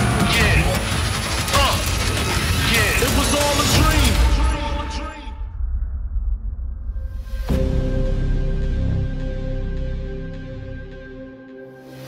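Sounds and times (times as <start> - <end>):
low rumble: 0.0 - 11.1.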